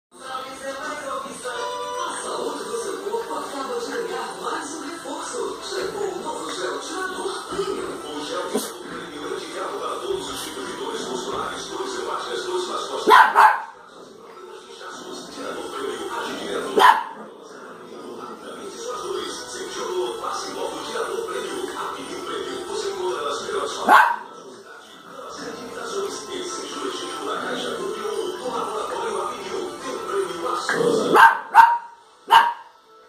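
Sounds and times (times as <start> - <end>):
background music: 0.1 - 33.0
television sound: 0.1 - 33.0
small dog barking: 13.1 - 13.8, 16.8 - 17.2, 23.8 - 24.3, 31.0 - 32.7.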